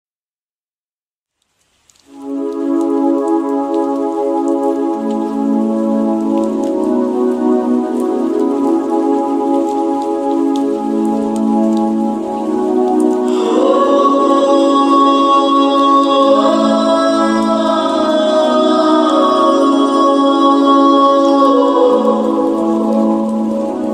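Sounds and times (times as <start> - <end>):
raindrop ticks: 1.3 - 15.1
rain: 1.3 - 23.9
reverb-heavy held chords: 12.3 - 23.9.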